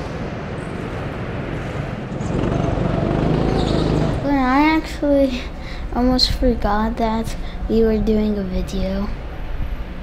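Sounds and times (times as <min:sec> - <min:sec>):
go-kart driving: 0:02.1 - 0:04.3.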